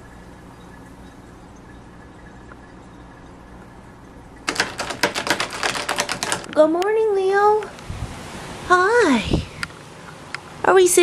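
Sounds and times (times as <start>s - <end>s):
ice cubes rattling in glass jar: 4.5s - 6.5s.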